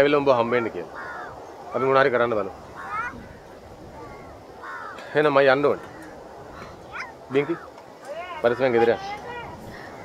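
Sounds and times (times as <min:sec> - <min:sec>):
outdoor background: 0:00.0 - 0:10.0
crow cawing: 0:00.5 - 0:02.0, 0:02.6 - 0:08.0, 0:09.7 - 0:10.0.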